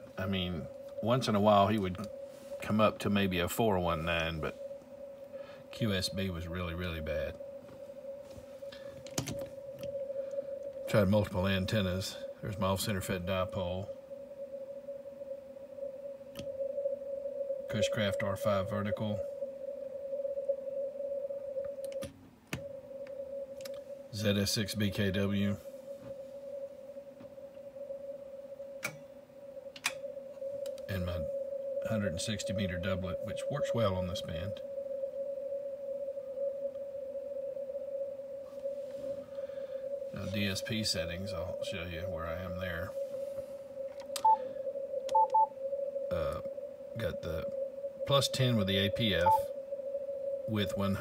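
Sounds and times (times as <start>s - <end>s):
radio band noise: 0.0s - 7.5s, 30.8s - 34.7s, 39.0s - 43.6s, 46.1s - 49.5s
steady radio tone: 0.0s - 22.0s, 22.6s - 51.0s
faint radio hiss: 0.0s - 51.0s
panel beep with click: 44.2s - 44.4s, 45.1s - 45.5s, 49.2s - 49.5s.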